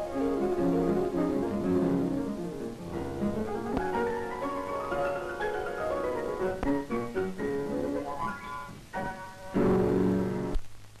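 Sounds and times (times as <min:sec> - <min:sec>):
grand piano playing: 0:00.0 - 0:10.6.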